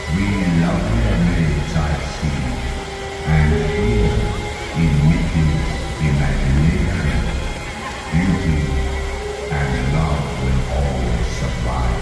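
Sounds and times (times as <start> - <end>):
deep low voice: 0.0 - 12.0
long held low note: 0.0 - 12.0
ominous music over sound system: 0.0 - 12.0.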